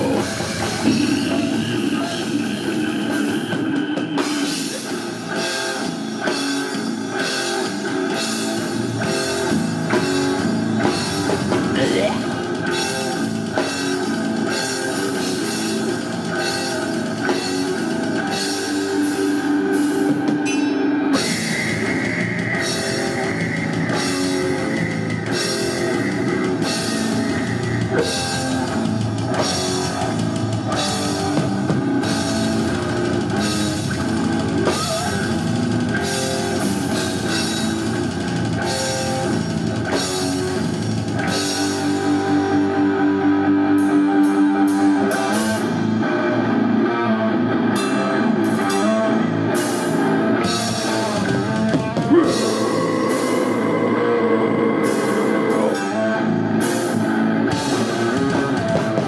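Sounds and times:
death metal band playing live: 0.0s - 59.0s.

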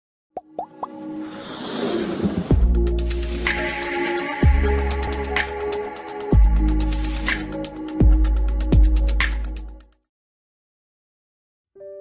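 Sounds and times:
whoosh: 1.2s - 3.6s.

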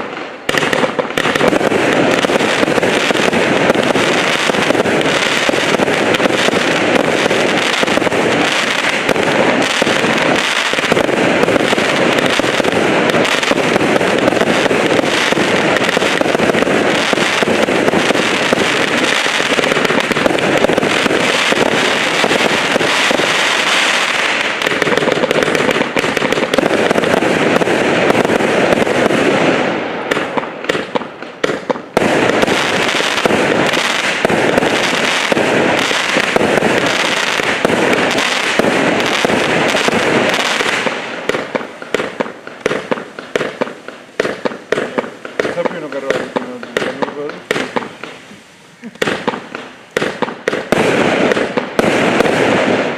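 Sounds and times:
fireworks launching and bursting: 0.0s - 52.9s.

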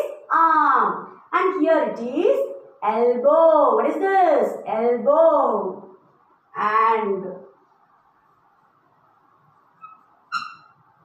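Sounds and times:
chalk squeaking on a blackboard: 9.7s - 11.0s.

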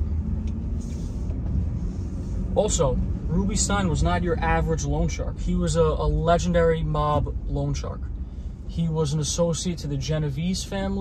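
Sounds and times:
car driving in traffic: 0.0s - 11.0s
soft hiss: 0.4s - 11.0s.

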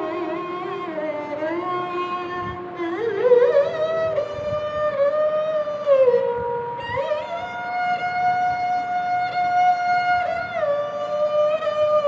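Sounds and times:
bowed sarangi sustained note: 0.0s - 12.0s.

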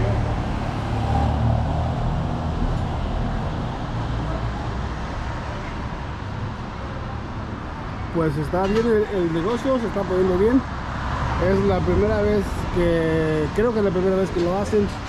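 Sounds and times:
street traffic: 0.0s - 15.0s.

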